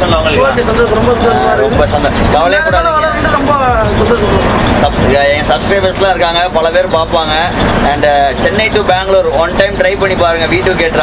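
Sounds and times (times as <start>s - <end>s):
bus engine and road rumble: 0.0s - 11.0s
voices talking: 0.0s - 11.0s.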